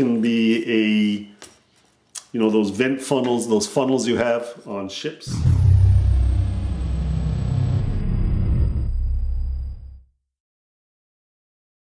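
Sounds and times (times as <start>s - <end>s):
deep steady rumble: 5.3s - 10.0s.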